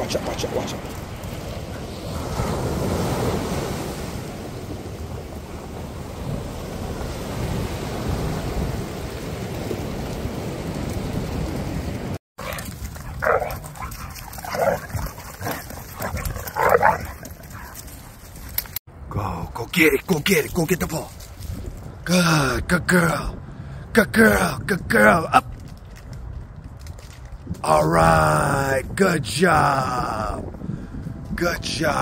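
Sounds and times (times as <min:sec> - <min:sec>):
surf breaking on beach: 0:01.9 - 0:12.2
dogs barking and whining: 0:12.4 - 0:17.9.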